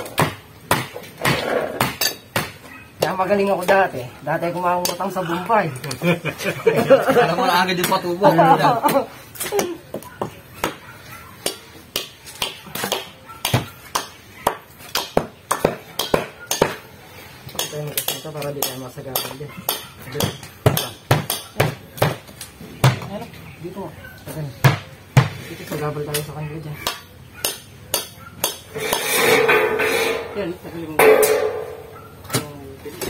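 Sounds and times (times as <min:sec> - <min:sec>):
hand tools clanking on rebar: 0:27.5 - 0:33.0.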